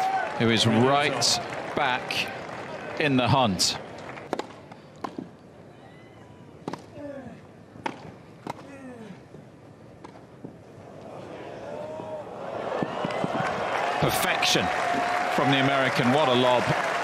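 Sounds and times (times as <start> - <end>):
racket striking tennis ball: 4.3 - 5.3, 7.8 - 8.6
crowd reacting: 11.0 - 17.0.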